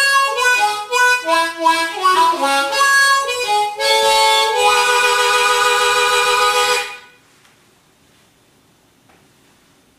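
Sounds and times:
harmonica chord: 0:00.0 - 0:07.2.

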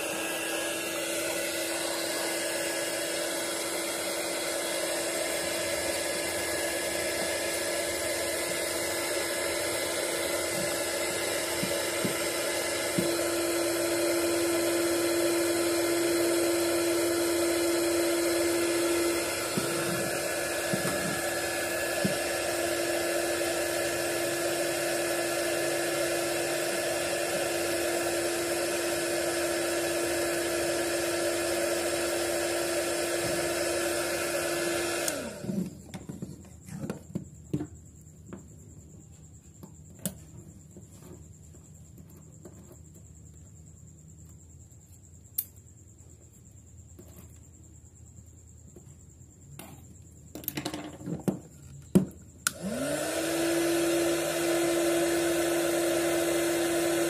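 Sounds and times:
motor winding down: 0:00.0 - 0:35.8, 0:52.4 - 0:57.0
heat gun humming and whining: 0:00.0 - 0:36.2, 0:52.0 - 0:57.0.

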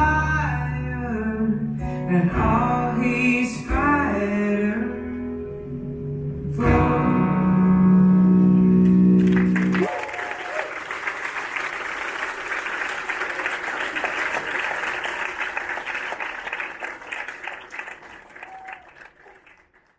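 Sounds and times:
audience applauding: 0:09.2 - 0:19.9.

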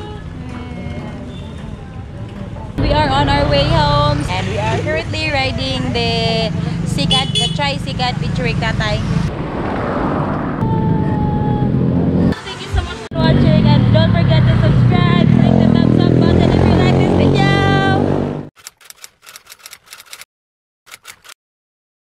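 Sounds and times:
voices: 0:00.0 - 0:09.3, 0:10.6 - 0:18.1
vehicle engine running: 0:02.8 - 0:09.3.

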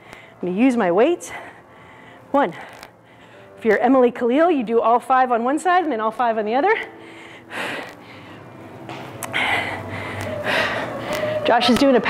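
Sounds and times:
woman's hard breath out: 0:09.2 - 0:11.4.

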